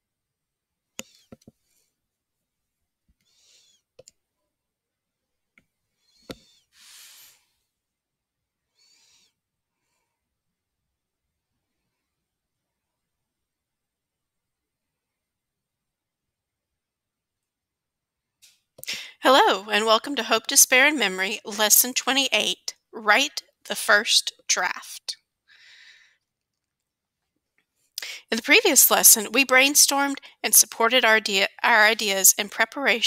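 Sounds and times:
faint hiss: 6.4 - 7.7
breathy intake of breath: 25.5 - 26.2.

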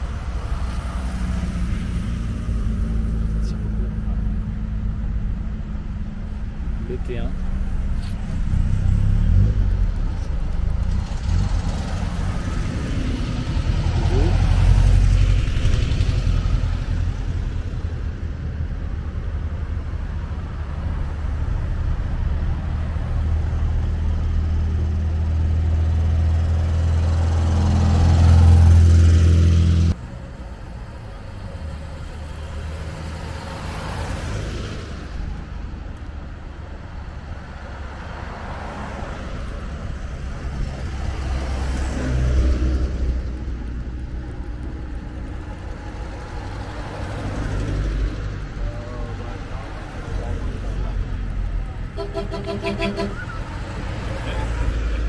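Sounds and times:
cars driving past: 0.0 - 55.0.

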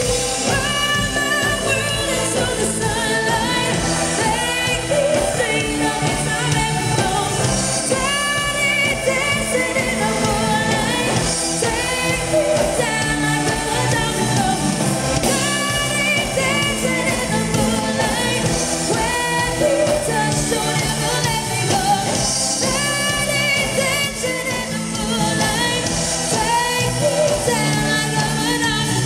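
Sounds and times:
drum kit: 0.0 - 29.0
electric guitar: 0.0 - 29.0
keyboard: 0.0 - 29.0
women singing: 0.0 - 29.0.

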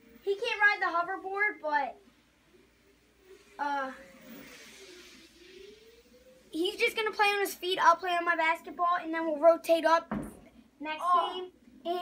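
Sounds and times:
soft hiss: 1.2 - 8.4
hoverboard motor whine: 2.6 - 6.7.

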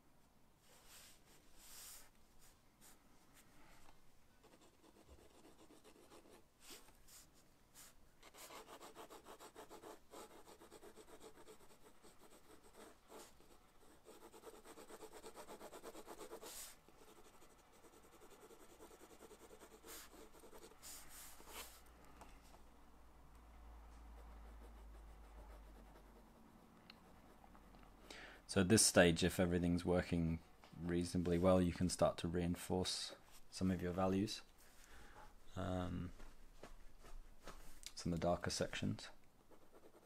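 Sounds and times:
pencil scratching on paper: 4.4 - 21.8, 24.2 - 26.4, 39.4 - 40.0.

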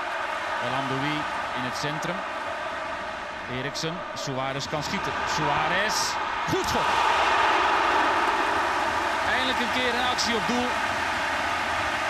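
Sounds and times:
stadium crowd reacting loudly: 0.0 - 12.0.

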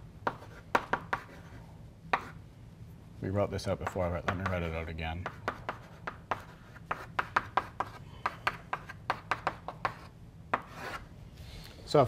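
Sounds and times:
chalk tapping and scraping on blackboard: 0.2 - 2.4, 3.8 - 11.1.

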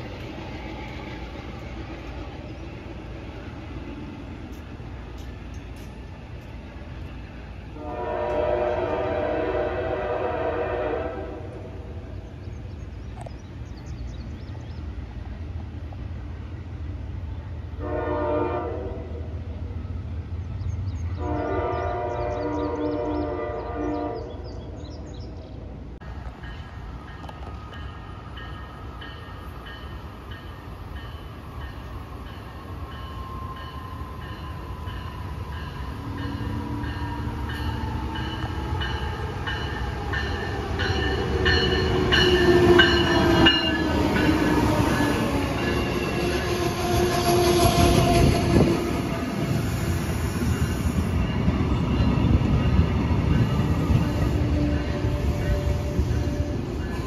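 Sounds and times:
train rumble and wheel noise: 0.0 - 57.0
train horn: 7.7 - 12.0, 17.7 - 19.5, 21.2 - 24.5, 45.2 - 51.1, 53.6 - 57.0.

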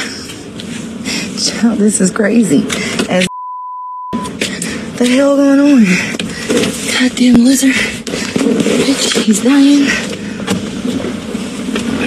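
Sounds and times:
car engine hum inside cabin: 0.0 - 12.0.

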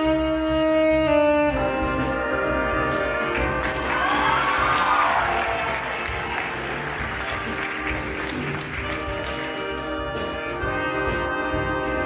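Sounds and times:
horn section held notes: 0.0 - 12.0
jazz band playing: 0.0 - 12.0
saxophone solo: 0.0 - 12.0
audience applauding: 3.3 - 10.0.

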